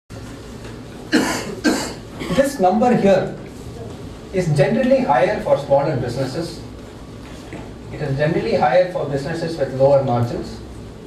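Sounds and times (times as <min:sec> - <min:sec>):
low room hum: 0:00.1 - 0:11.0
person coughing: 0:01.1 - 0:02.6.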